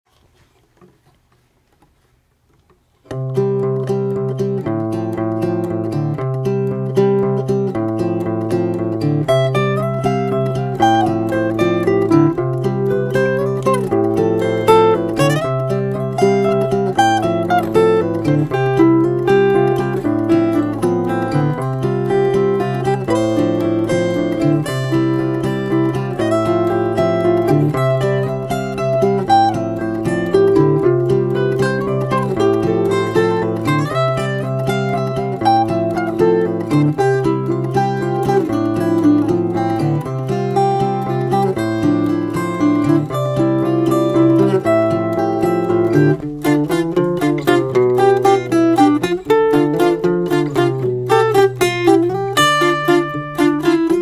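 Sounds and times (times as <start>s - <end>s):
plucked guitar melody notes: 3.0s - 54.0s
acoustic guitar chords: 3.1s - 54.0s.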